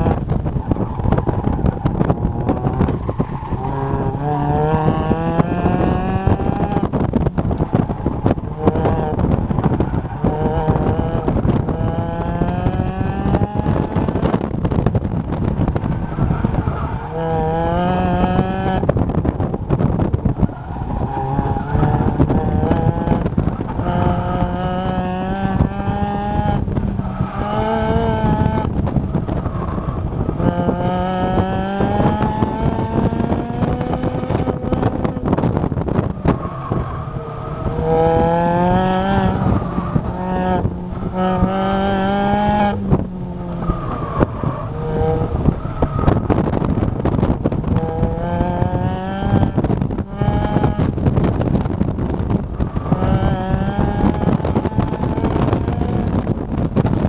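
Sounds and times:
car engine revving hard: 0.0 - 57.0.

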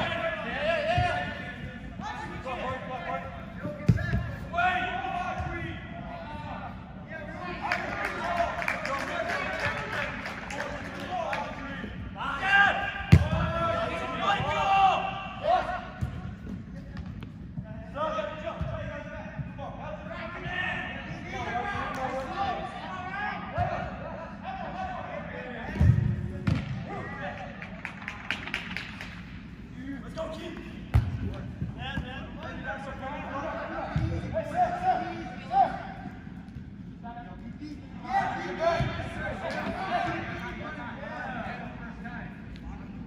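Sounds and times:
players shouting: 0.0 - 16.0, 37.7 - 42.0.

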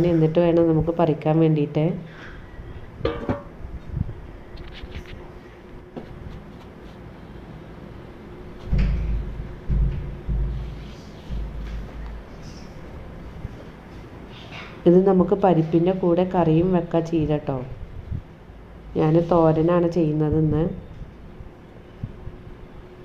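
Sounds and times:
wind bumps on microphone: 3.6 - 5.3, 17.2 - 18.3.

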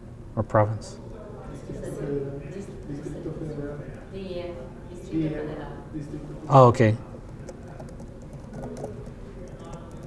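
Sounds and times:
room hum: 0.0 - 10.0
laptop keystrokes: 7.3 - 10.0.

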